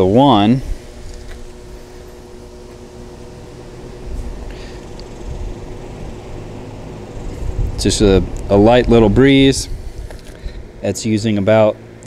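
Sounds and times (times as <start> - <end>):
box fan humming: 0.0 - 12.0
low rumble: 0.5 - 10.9.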